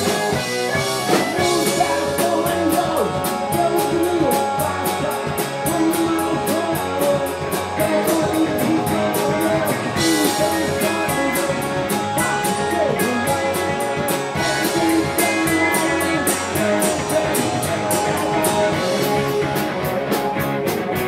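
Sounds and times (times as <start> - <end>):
drum kit: 0.0 - 21.0
electric guitars: 0.0 - 21.0.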